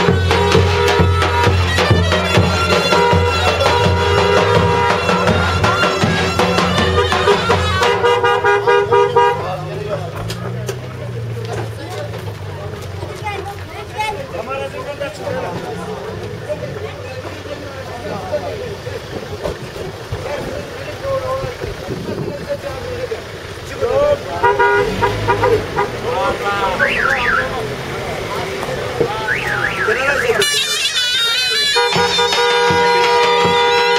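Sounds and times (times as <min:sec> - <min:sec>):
car horn honking: 0:00.0 - 0:10.0, 0:24.0 - 0:27.8, 0:29.0 - 0:33.9
reedy folk music: 0:00.0 - 0:33.9
voices: 0:00.0 - 0:33.9.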